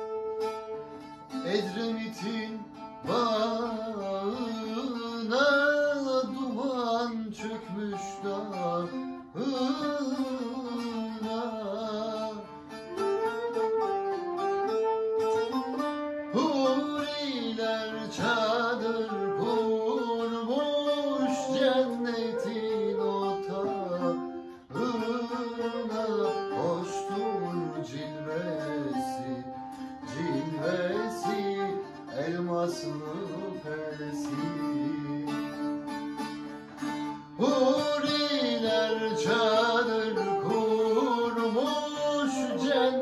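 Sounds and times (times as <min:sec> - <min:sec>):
long-necked lute: 0:00.0 - 0:43.0
man singing: 0:01.3 - 0:13.4, 0:16.2 - 0:43.0
flute: 0:09.3 - 0:43.0.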